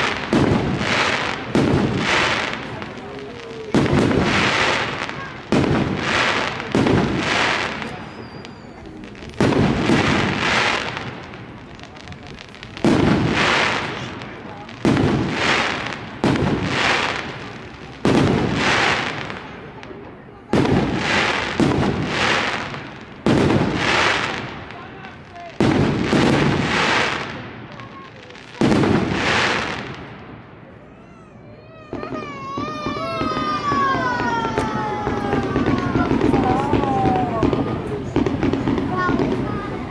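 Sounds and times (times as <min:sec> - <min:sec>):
firework crackle: 0:00.0 - 0:39.9
rocket whistle: 0:07.9 - 0:09.0.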